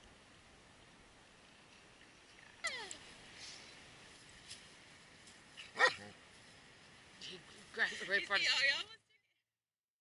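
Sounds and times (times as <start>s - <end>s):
dog crying: 2.6s - 3.0s, 5.8s - 6.0s
dog whining: 2.6s - 3.0s.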